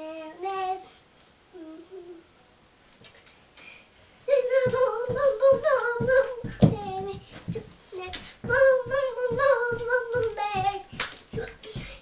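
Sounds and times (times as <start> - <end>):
girl singing held notes: 4.3 - 12.0.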